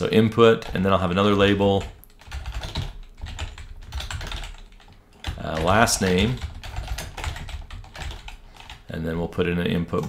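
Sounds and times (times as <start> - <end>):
typing on computer keyboard: 0.6 - 8.8.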